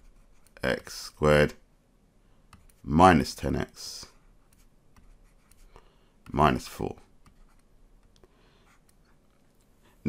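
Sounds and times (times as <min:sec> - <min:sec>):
stylus scratching on tablet screen: 0:00.0 - 0:00.8, 0:03.8 - 0:06.4, 0:07.1 - 0:09.7.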